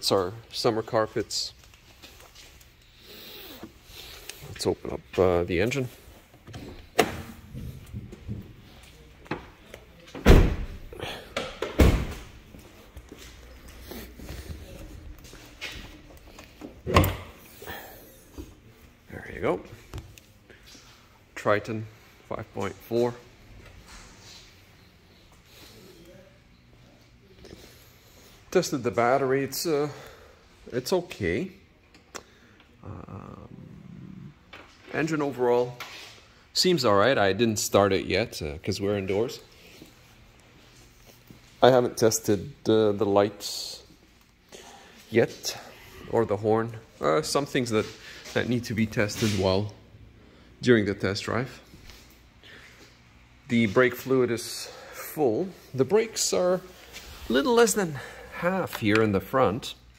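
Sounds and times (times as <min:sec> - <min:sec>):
person speaking: 0:53.5 - 0:59.8.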